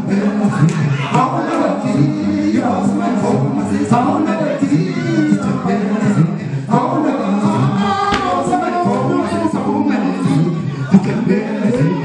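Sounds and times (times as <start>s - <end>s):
group of men singing: 0.0s - 12.0s.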